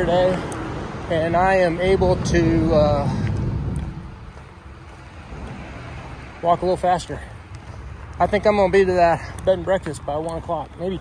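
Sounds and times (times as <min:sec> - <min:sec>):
low rumbling noise: 0:00.0 - 0:08.8.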